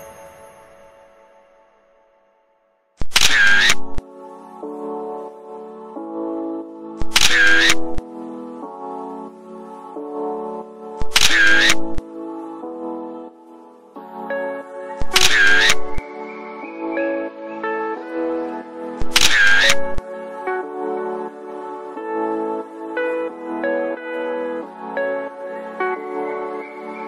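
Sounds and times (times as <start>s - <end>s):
soft instrumental music: 0.0s - 27.0s
camera shutter snap: 3.0s - 4.0s, 7.0s - 8.0s, 11.0s - 12.0s, 15.0s - 16.0s, 19.0s - 20.0s.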